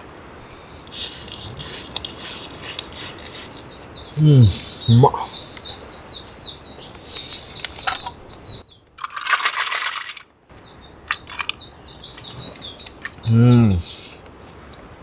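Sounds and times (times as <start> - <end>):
crackling noise burst: 0.4 - 5.3
songbird chirping: 0.8 - 9.0, 10.5 - 14.2
man humming: 4.2 - 5.4, 13.3 - 14.0.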